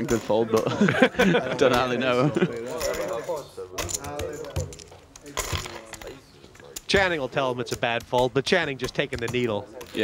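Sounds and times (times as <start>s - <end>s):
voices around a table: 0.0s - 10.0s.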